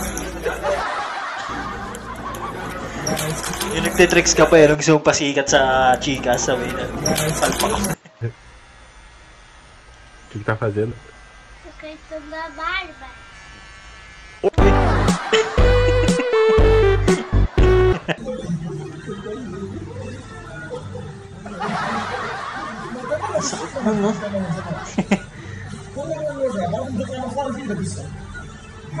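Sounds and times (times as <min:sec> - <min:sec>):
electric hair clipper buzzing: 0:00.0 - 0:00.8, 0:01.5 - 0:04.7, 0:05.6 - 0:18.0
loud music with heavy bass beat: 0:14.6 - 0:18.1.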